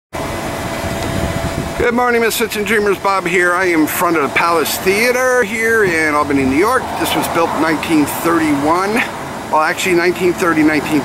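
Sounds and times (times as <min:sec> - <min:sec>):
low uneven rumble: 0:00.2 - 0:09.6
man's voice: 0:01.8 - 0:11.0.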